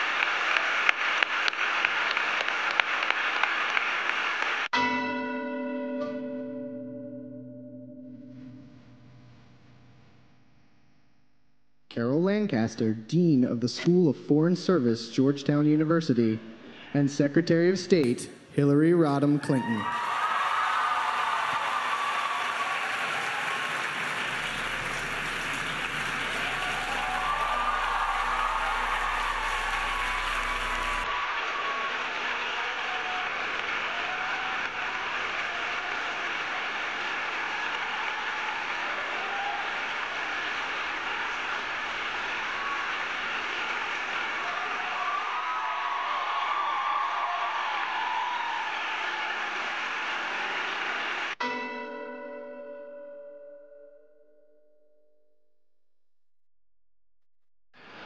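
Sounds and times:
audience applauding: 0.0 - 4.8, 19.5 - 51.4.

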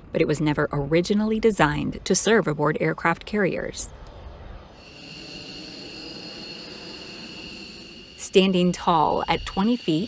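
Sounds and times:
jet engine low rumble: 3.9 - 10.0
high-pitched turbine whine: 4.6 - 10.0.

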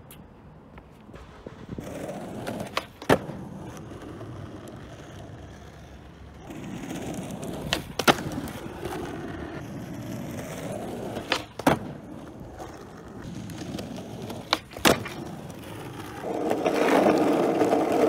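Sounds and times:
skateboard wheels rolling on asphalt: 0.0 - 18.0
skateboard clacks popping and landing: 1.1 - 5.8, 6.4 - 18.0.

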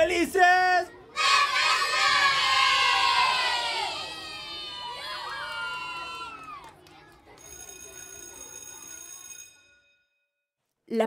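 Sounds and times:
children shouting: 1.1 - 6.8.

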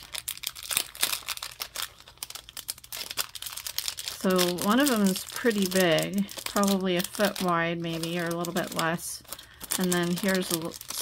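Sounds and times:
plastic sleeve crinkling: 0.0 - 11.0.

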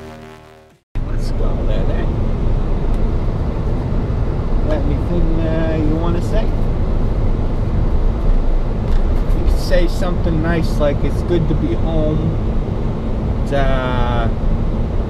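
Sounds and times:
road and engine rumble in cabin: 1.0 - 15.0.

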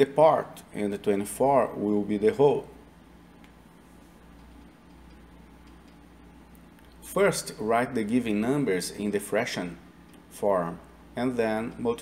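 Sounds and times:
background hiss: 0.0 - 12.0
low steady hum: 0.0 - 12.0.

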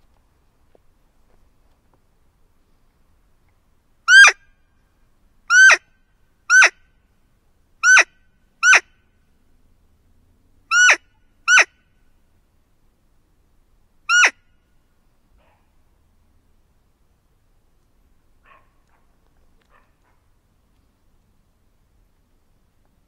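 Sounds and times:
deer call high peeps: 4.1 - 4.6, 5.5 - 5.9, 6.5 - 6.8, 7.8 - 9.0, 10.7 - 11.9, 14.1 - 14.5.

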